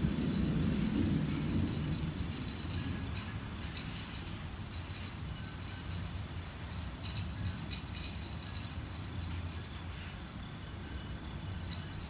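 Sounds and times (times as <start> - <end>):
thunder rumble: 0.0 - 6.0.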